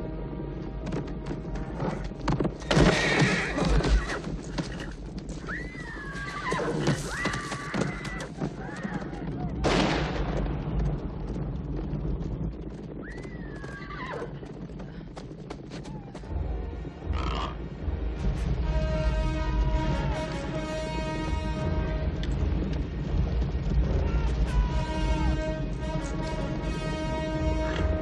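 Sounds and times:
film music: 0.0 - 7.3, 15.9 - 28.0
horse whinnying: 2.7 - 9.2, 13.1 - 14.4
low rumble: 8.5 - 28.0.

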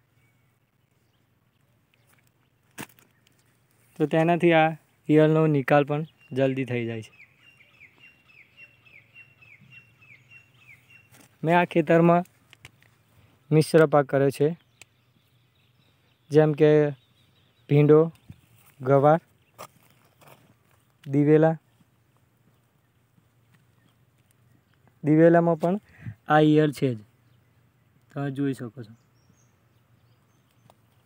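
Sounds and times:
bird chirping: 0.0 - 31.0.

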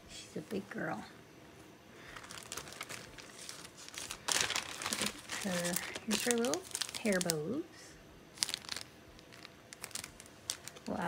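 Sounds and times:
plastic packet crinkling: 2.0 - 7.6, 8.3 - 11.0.

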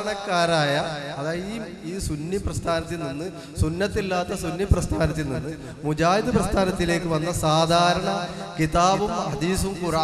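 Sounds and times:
man speaking over loudspeaker: 0.0 - 10.0.

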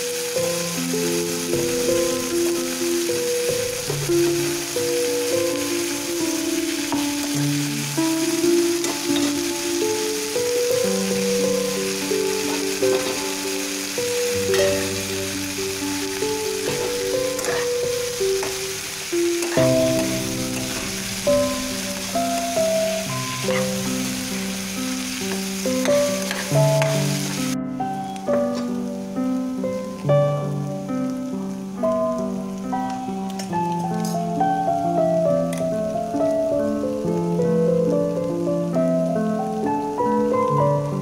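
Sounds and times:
background music with melody: 0.0 - 41.0
vegetables sizzling in oil: 0.0 - 41.0
spatula stirring: 12.4 - 13.4, 16.5 - 22.2, 22.9 - 27.0.

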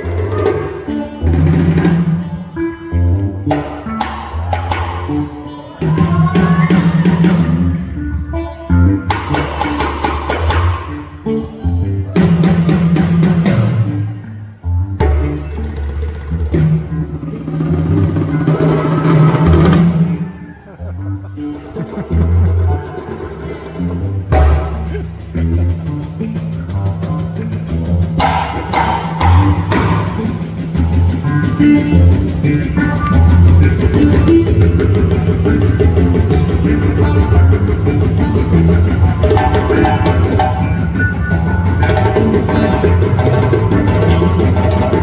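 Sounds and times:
drum kit beat: 0.0 - 14.1, 14.8 - 45.0
live band playing: 0.0 - 45.0.

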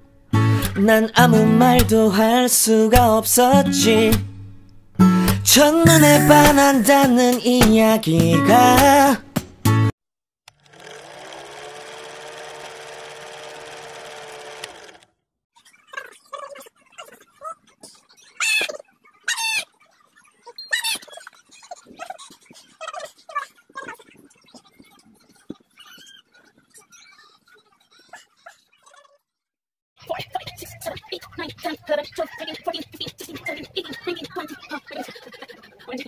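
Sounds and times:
motor hum: 10.5 - 15.1
film projector clatter: 10.5 - 15.2
rubber ball squeaking on tiles: 20.5 - 22.2.

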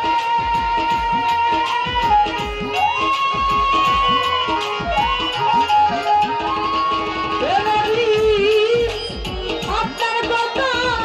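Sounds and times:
hand drum with bending bass: 0.0 - 10.0
flute-like melody: 0.0 - 11.0.

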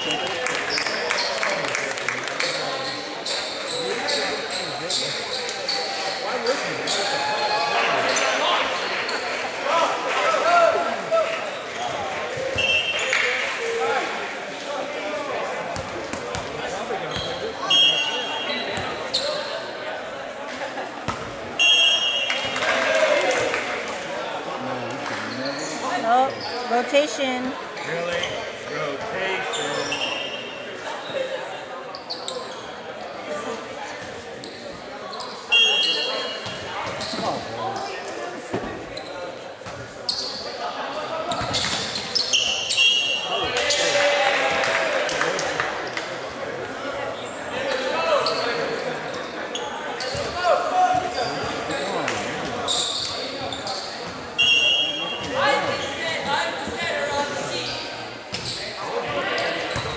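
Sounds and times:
chatter and calls of people: 0.0 - 59.9
sneakers squeaking on court: 15.8 - 19.7, 31.9 - 33.1, 34.0 - 37.9, 41.3 - 43.4, 47.2 - 59.9.

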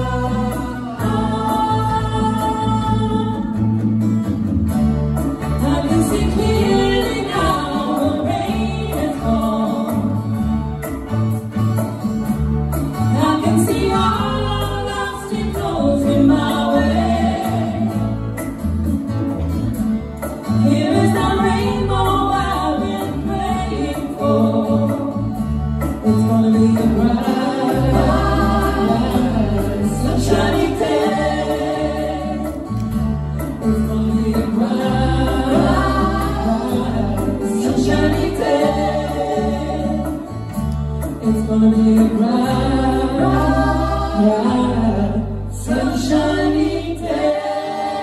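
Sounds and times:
woman singing backing vocals: 0.0 - 3.7, 5.5 - 10.3, 13.1 - 18.1, 20.6 - 25.4, 26.0 - 32.7, 33.6 - 40.5, 41.2 - 48.0
woman singing lead vocal: 0.0 - 3.8, 5.4 - 10.4, 13.0 - 18.2, 20.5 - 40.6, 41.2 - 48.0
live band playing soul song: 0.0 - 48.0.

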